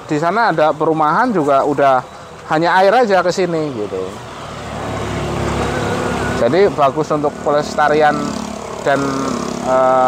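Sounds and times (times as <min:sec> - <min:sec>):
vehicle engine passing by: 0:03.8 - 0:10.0.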